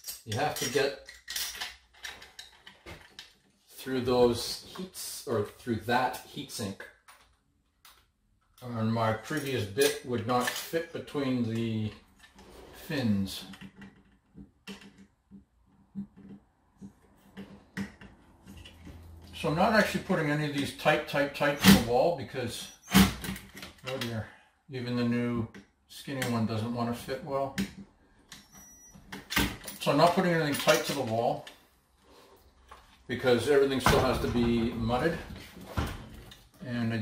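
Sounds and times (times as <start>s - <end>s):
thermostat and wires clinking: 0.0s - 3.6s, 27.6s - 31.6s.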